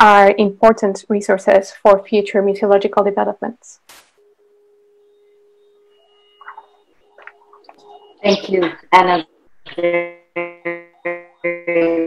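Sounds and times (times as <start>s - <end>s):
faint steady tone: 4.2s - 12.0s.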